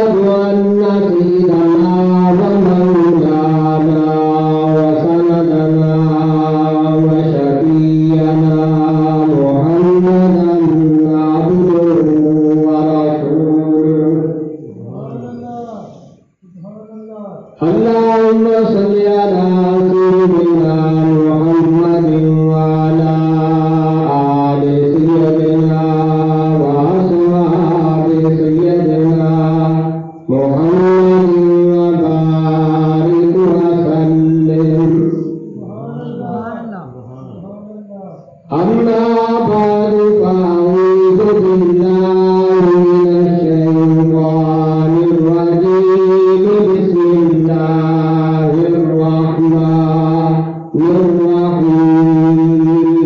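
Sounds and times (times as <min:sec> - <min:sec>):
man chanting melodically: 0:00.0 - 0:53.0.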